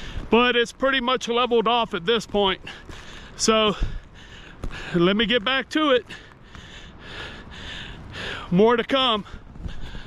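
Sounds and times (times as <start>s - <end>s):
man breathing: 0.0s - 0.3s, 2.6s - 5.1s, 6.0s - 8.6s, 9.2s - 10.0s.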